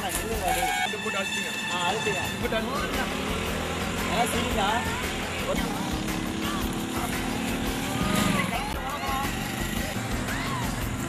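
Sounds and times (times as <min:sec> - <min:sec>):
motorcycle engine running: 0:01.6 - 0:11.0
people talking: 0:08.0 - 0:10.7.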